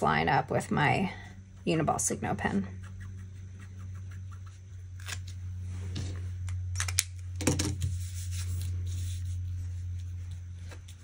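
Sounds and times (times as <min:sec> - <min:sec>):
steady low hum: 0:00.0 - 0:11.0
hands rustling on paper: 0:07.9 - 0:11.0.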